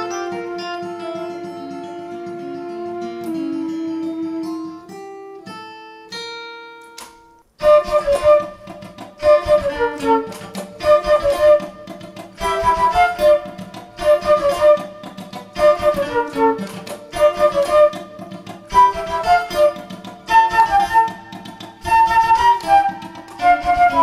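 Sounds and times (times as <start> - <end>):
flute melody: 0.0 - 5.7, 7.6 - 24.0
acoustic guitar picking notes: 0.0 - 24.0
strummed guitar: 0.0 - 24.0.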